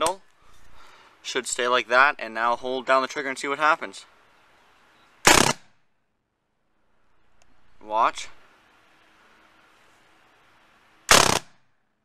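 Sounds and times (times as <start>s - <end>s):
blast of gas from paintball gun: 5.2s - 5.7s, 11.1s - 11.6s.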